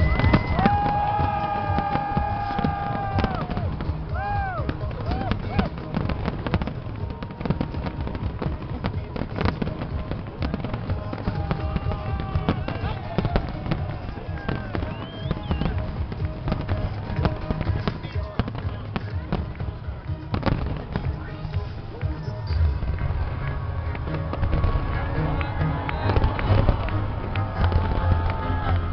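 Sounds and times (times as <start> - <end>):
crowd voices: 0.0 - 28.9
fireworks shells bursting: 0.0 - 28.9.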